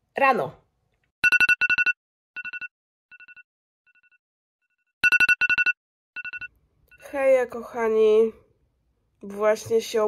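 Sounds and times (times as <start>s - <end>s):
alarm clock beeping: 1.2s - 4.2s, 5.0s - 7.1s.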